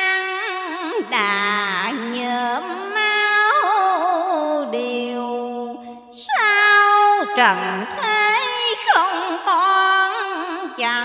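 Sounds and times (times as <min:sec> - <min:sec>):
woman chanting in sung style: 0:00.0 - 0:11.0.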